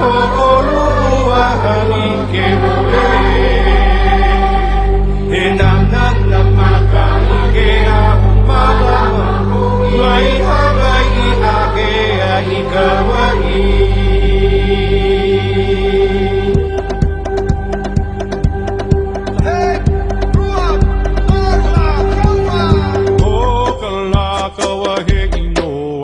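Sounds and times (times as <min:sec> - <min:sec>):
low bass notes: 0:00.0 - 0:24.5
instrumental backing: 0:00.0 - 0:26.0
person singing: 0:00.0 - 0:26.0.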